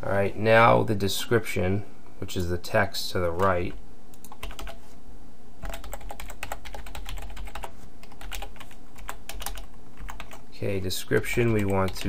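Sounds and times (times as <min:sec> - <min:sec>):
computer keyboard typing: 0:04.1 - 0:04.8, 0:05.6 - 0:10.4, 0:11.1 - 0:12.0.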